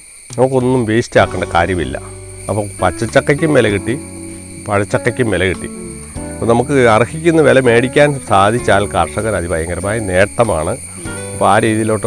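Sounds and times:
background music: 0:01.2 - 0:12.0.

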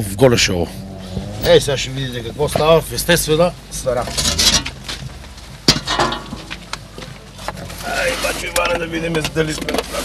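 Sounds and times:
slab door scraping on masonry: 0:07.9 - 0:08.6.

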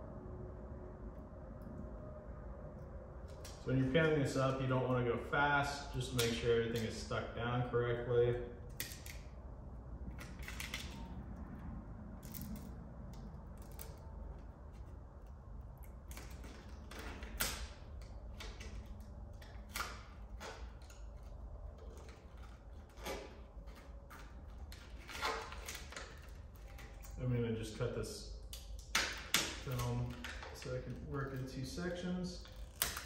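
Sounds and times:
low hum: 0:00.0 - 0:33.0
paper peeling off vinyl: 0:12.2 - 0:27.8, 0:29.0 - 0:33.0.

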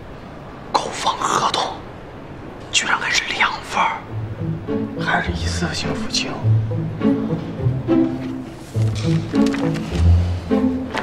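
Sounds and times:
man speaking: 0:05.0 - 0:06.6.

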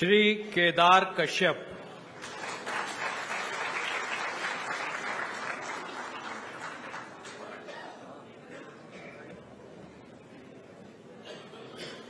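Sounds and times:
audience applauding: 0:02.2 - 0:07.6.

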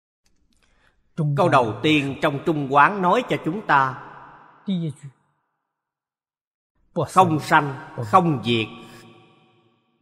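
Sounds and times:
man speaking: 0:01.2 - 0:04.0, 0:04.7 - 0:05.1, 0:07.0 - 0:09.0.

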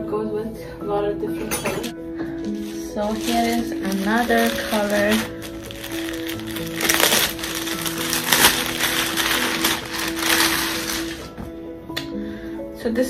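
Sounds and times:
background music with held notes: 0:00.0 - 0:13.0
clothes rustling: 0:02.5 - 0:11.4.

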